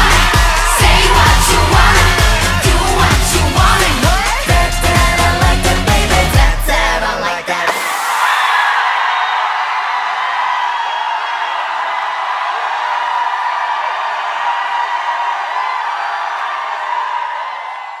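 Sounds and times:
concert audience cheering: 0.0s - 6.2s, 7.5s - 18.0s.

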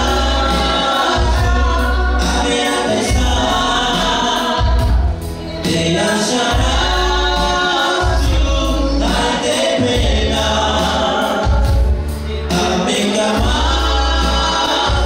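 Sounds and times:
electronic keyboard accompaniment: 0.0s - 15.0s
heavy bass line: 0.0s - 15.0s.

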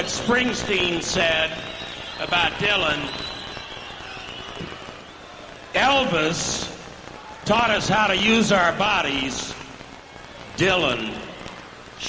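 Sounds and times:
arena crowd hubbub: 0.0s - 12.0s.

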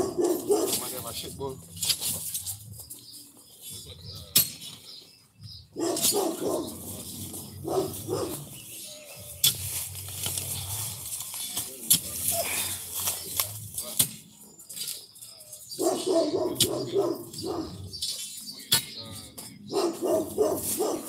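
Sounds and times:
dog barking: 0.0s - 1.0s, 5.8s - 6.8s, 7.6s - 8.5s, 15.8s - 17.9s, 19.7s - 21.0s
digging bar striking rocky soil: 1.7s - 2.5s, 4.3s - 4.8s, 9.3s - 10.5s.

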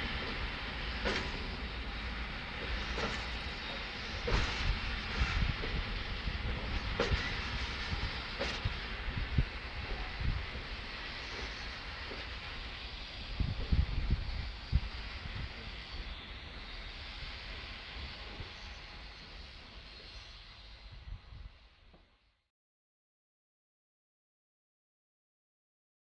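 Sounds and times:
train hissing: 0.0s - 22.0s.

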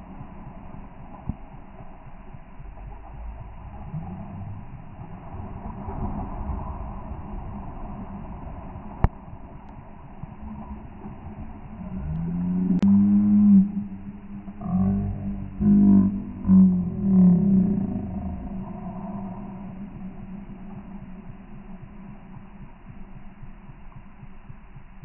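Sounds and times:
low drawn-out pitched tones: 0.0s - 25.0s
slowed water sloshing rumble: 0.0s - 25.0s.

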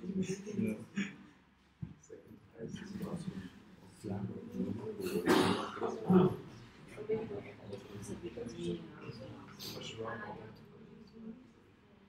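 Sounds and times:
person coughing: 5.0s - 5.9s.

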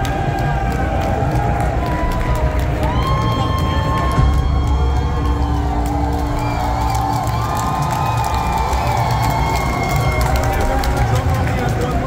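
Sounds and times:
crowd cheering and whooping: 0.0s - 12.0s
loud concert music: 0.0s - 12.0s.

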